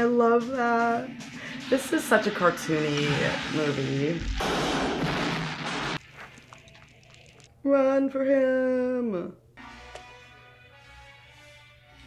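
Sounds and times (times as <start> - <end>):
loud explosion blast: 2.6 - 6.0.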